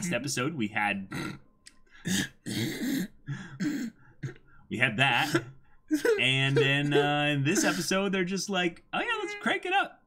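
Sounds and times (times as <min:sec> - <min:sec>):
man's stifled laughter: 0:05.3 - 0:08.0.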